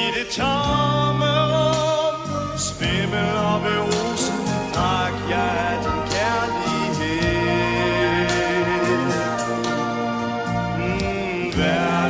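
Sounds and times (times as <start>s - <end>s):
man singing pop ballad: 0.0s - 12.0s
orchestral backing: 0.0s - 12.0s.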